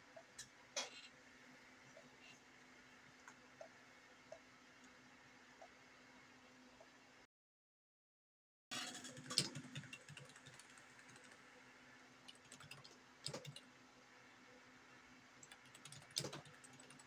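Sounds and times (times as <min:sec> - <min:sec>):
computer keyboard typing: 0:08.8 - 0:11.5, 0:12.3 - 0:13.7, 0:15.4 - 0:17.0.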